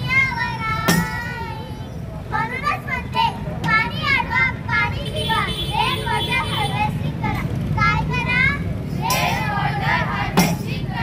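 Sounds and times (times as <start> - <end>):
child speaking into a microphone: 0.0 - 8.7.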